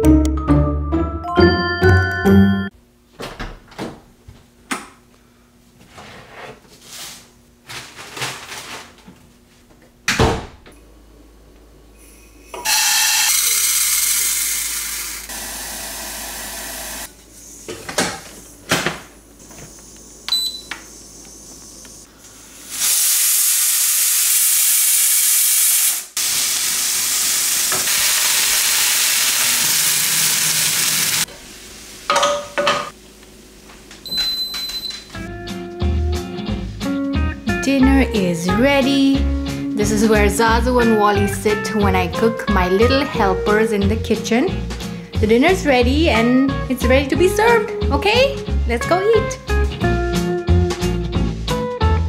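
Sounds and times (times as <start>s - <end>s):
pressure cooker hissing steam: 12.5s - 17.1s, 22.5s - 32.1s
kitchen clicks and knocks: 32.1s - 33.0s.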